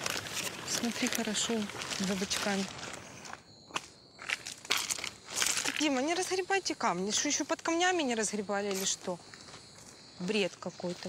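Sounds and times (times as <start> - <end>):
plastic bag rustling: 0.0 - 3.4
footsteps on loose gravel: 0.0 - 6.2.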